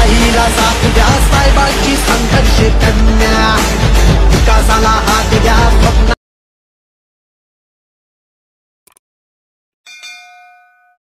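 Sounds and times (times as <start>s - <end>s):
notification ding: 9.9s - 11.0s.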